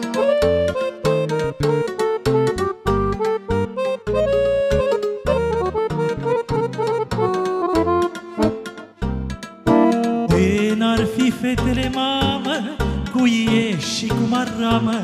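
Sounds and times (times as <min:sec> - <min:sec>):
accordion playing fast folk tune: 0:00.0 - 0:10.8.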